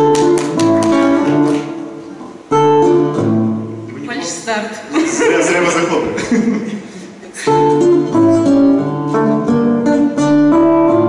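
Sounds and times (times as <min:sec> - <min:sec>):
guitar chords strummed: 0:00.0 - 0:04.2, 0:07.4 - 0:11.0.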